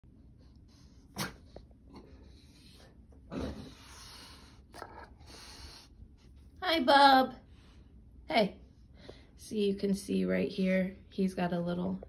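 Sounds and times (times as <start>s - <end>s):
dog sneezing: 1.1s - 1.6s.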